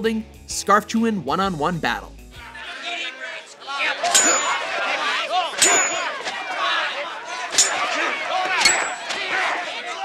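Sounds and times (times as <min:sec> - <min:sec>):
crowd shouting: 0:02.4 - 0:10.0
knife blades clanging: 0:04.1 - 0:04.7, 0:05.6 - 0:06.2, 0:07.5 - 0:09.2.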